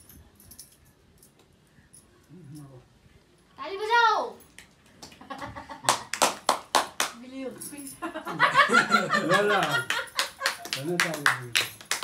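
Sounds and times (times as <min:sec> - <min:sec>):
hands clapping: 0:04.5 - 0:07.2, 0:09.6 - 0:12.0.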